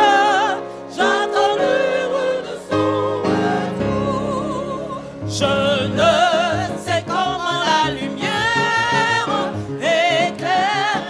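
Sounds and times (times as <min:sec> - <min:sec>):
instrumental accompaniment: 0:00.0 - 0:10.2
solo voice singing a hymn: 0:00.0 - 0:11.0.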